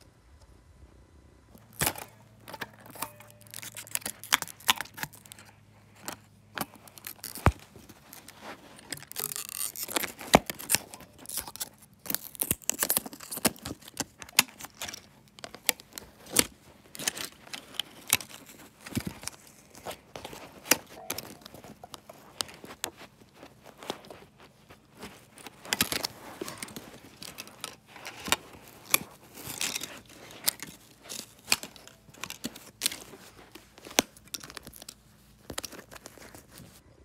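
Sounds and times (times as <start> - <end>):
plastic fragments clinking: 1.6 - 24.1, 24.8 - 36.5
plastic disc cracking and snapping: 1.6 - 36.7.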